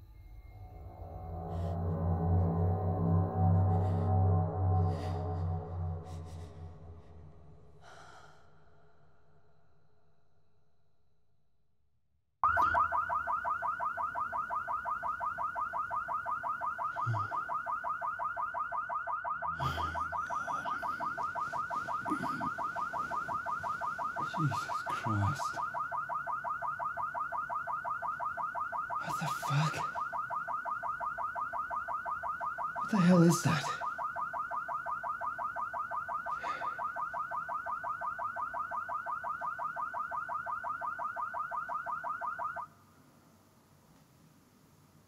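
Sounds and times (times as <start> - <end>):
car alarm pulsing tone: 0.0 - 7.9, 12.4 - 42.8.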